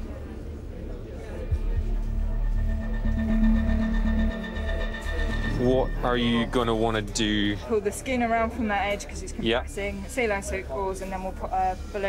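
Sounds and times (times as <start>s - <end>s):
steady held notes: 1.2s - 8.5s
low pulsing bass: 1.4s - 7.7s.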